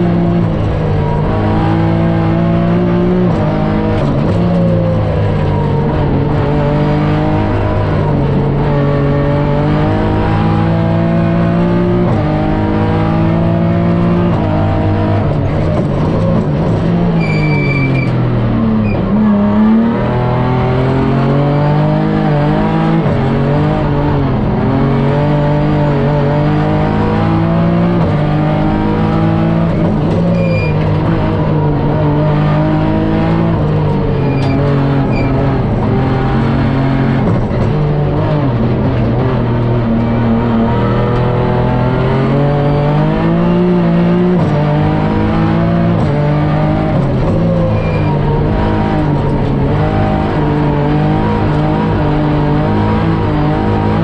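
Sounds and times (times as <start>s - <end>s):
car engine revving through gears: 0.0s - 54.0s.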